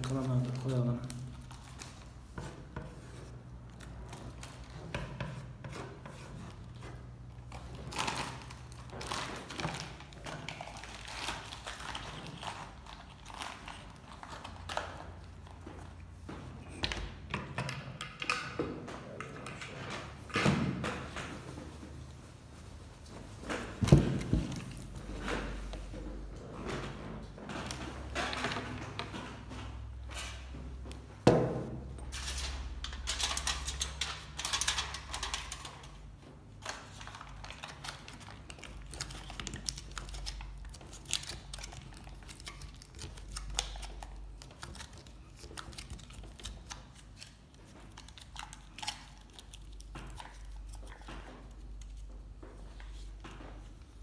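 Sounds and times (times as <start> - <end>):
aluminium foil crinkling: 7.5 - 14.8, 36.6 - 51.1.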